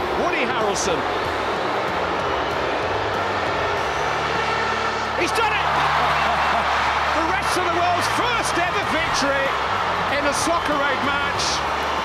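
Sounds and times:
stadium crowd roaring: 0.0 - 12.0.

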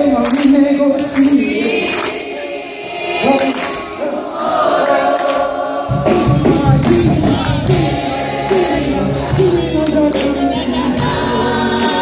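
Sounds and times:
crowd singing along: 0.0 - 12.0
live band music: 3.1 - 12.0.

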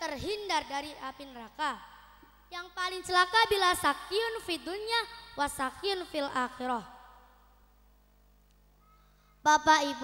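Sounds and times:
faint steady hum: 0.0 - 10.0
faint short tone: 8.8 - 9.4.

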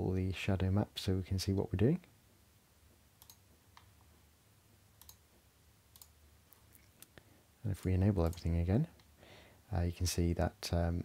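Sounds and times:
faint computer mouse clicks: 3.2 - 3.9, 5.0 - 5.2, 5.9 - 7.2.

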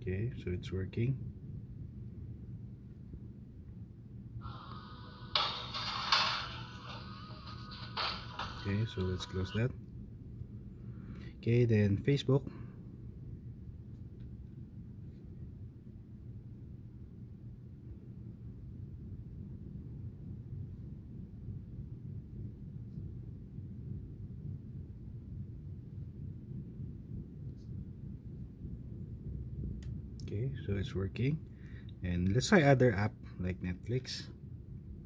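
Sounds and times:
low room rumble: 0.0 - 35.0.

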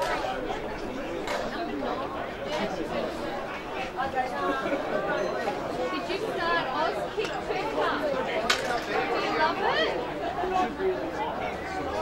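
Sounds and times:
overlapping voices chatting: 0.0 - 12.0.

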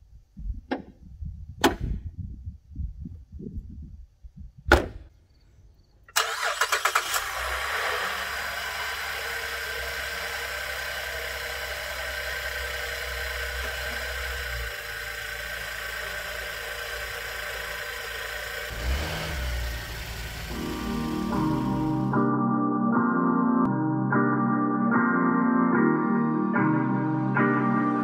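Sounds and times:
car engine cranking: 6.1 - 22.1
car engine idling: 6.2 - 22.2.

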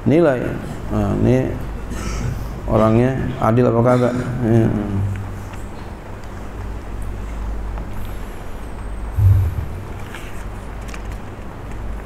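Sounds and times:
low background rumble: 9.2 - 10.4
low thump: 9.2 - 10.4.

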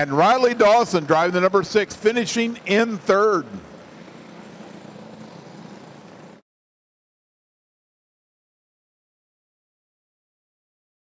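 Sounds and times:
faint engine hum: 0.0 - 6.4.

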